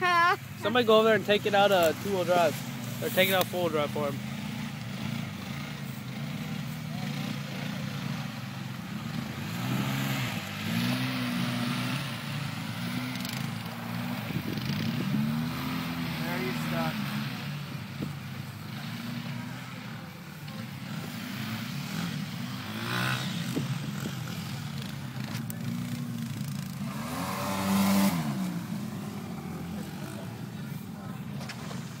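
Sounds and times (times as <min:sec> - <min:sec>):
atv engines revving: 0:00.0 - 0:32.0.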